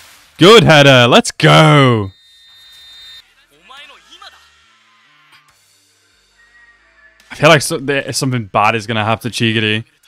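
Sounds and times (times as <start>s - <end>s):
faint high-pitched tone: 1.6s - 7.6s.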